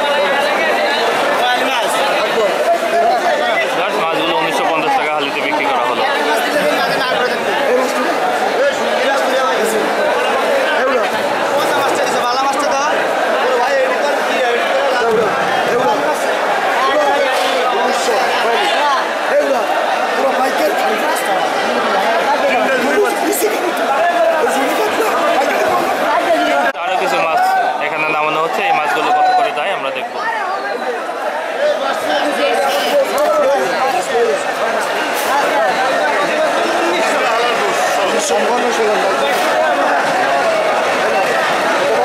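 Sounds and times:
crowd chattering loudly: 0.0s - 42.0s.

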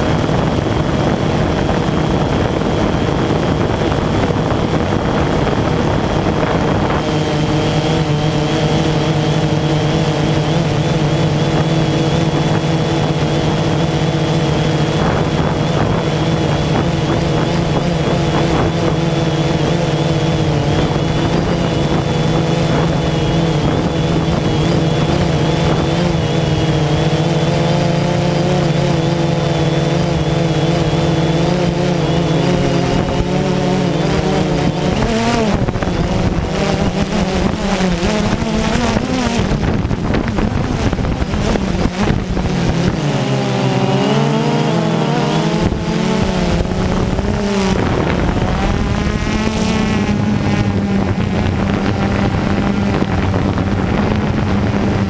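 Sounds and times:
quadcopter motors buzzing: 0.0s - 55.0s.

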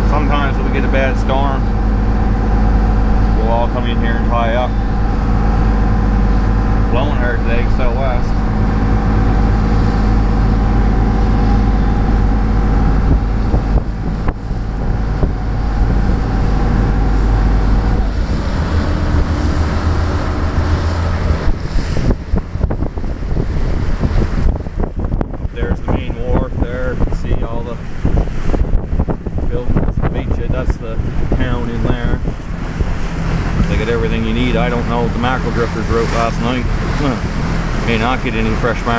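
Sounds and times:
boat diesel engine running: 0.0s - 38.9s
wind buffeting microphone: 0.0s - 38.9s.

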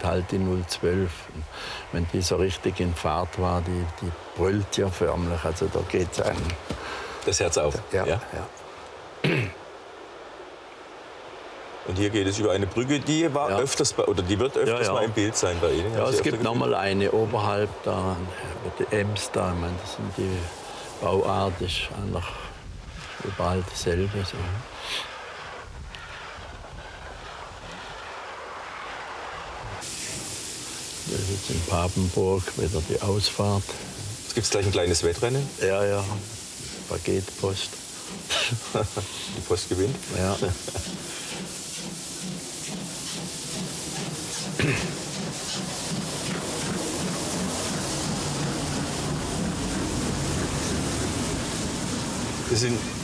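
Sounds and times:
bright steady hiss: 0.0s - 53.0s
steam locomotive exhaust beats: 0.0s - 53.0s
train wheels rumbling on track: 12.0s - 53.0s.

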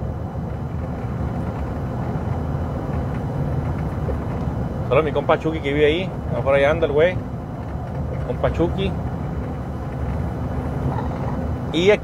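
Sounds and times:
road and engine rumble in truck cab: 0.0s - 12.0s.

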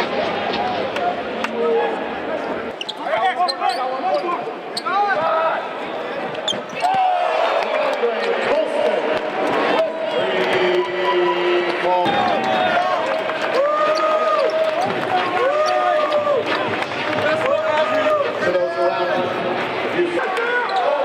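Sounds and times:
players and crowd voices: 0.0s - 21.0s
sneakers squeaking: 2.7s - 5.0s, 6.4s - 7.0s, 20.6s - 21.0s.

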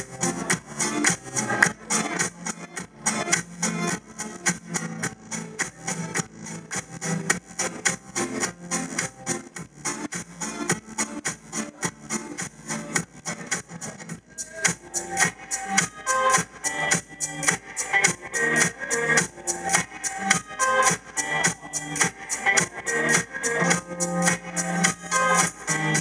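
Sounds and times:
live band with electric guitar: 0.0s - 26.0s.

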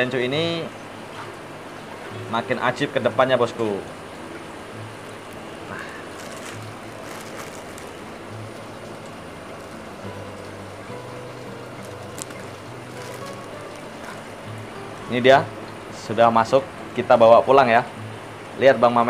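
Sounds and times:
faint background music: 0.0s - 19.0s
trickling water from filters: 0.0s - 19.0s
plastic bag rustles and clicks: 5.7s - 14.3s.

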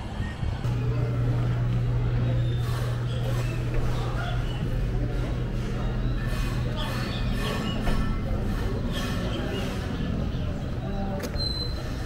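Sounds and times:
low mechanical hum: 0.0s - 12.0s
street background noise: 0.0s - 12.0s.

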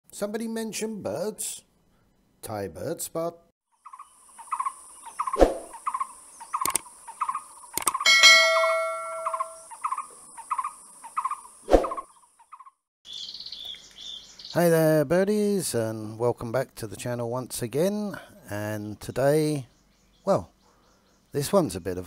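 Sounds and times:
bird chirping: 3.8s - 14.9s, 18.8s - 22.0s
sharp clicks: 6.6s - 6.9s, 7.7s - 8.0s
bell-like ding: 8.1s - 9.7s.

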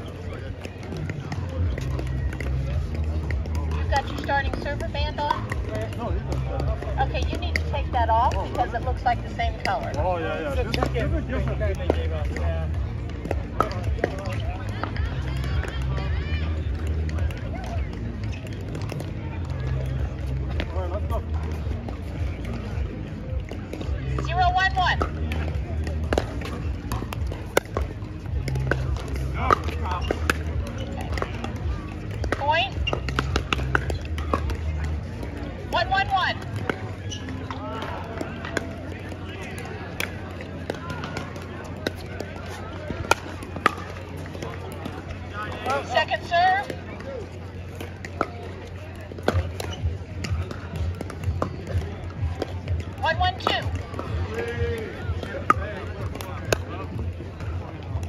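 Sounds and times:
paddles striking plastic ball: 16.6s - 58.0s.

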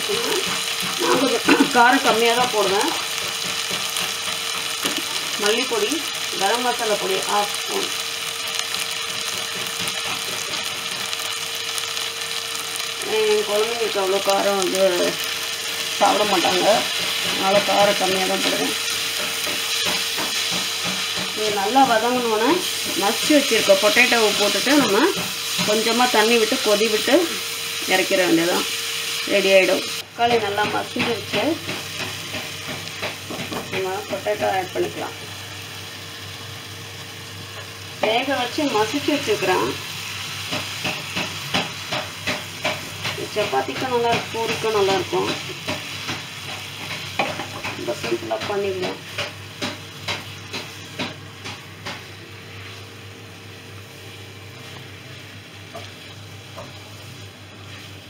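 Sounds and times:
curry frying in a pan: 0.0s - 58.0s.

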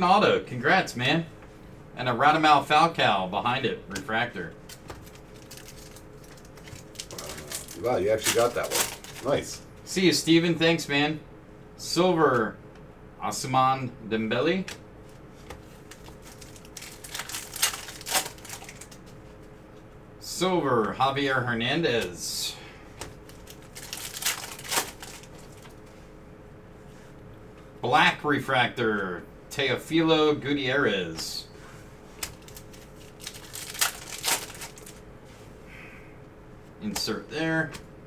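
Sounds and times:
faint room hum: 0.0s - 38.0s
trading cards crinkling and sliding: 4.6s - 9.6s, 15.0s - 19.5s, 23.0s - 26.0s, 32.1s - 35.0s.

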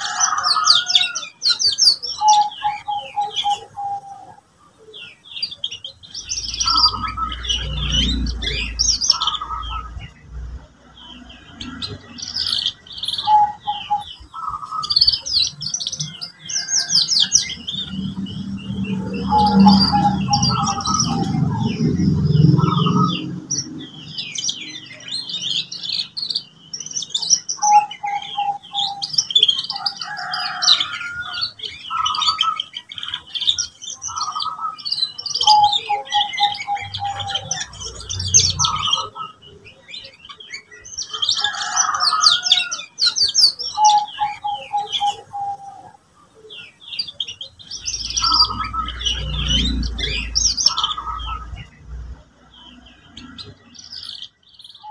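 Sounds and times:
canary singing: 0.0s - 54.9s.

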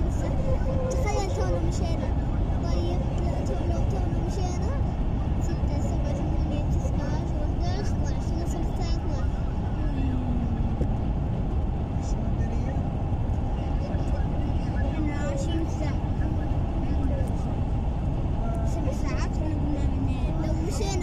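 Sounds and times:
faint indistinct voices: 0.0s - 21.0s
road and engine rumble: 0.0s - 21.0s.

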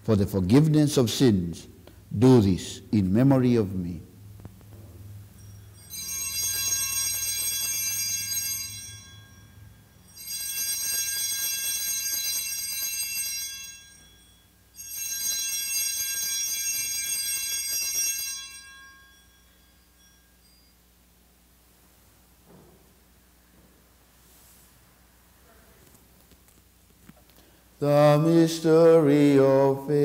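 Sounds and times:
altar bells ringing: 3.1s - 22.0s.

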